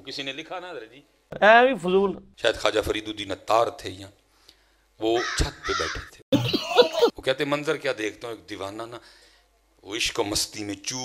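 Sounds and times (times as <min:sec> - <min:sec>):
crow cawing: 0:05.2 - 0:06.2.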